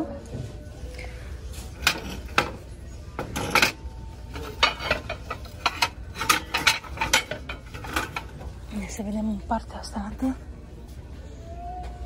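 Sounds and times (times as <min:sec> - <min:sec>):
small plates clicking together: 0:03.2 - 0:08.4.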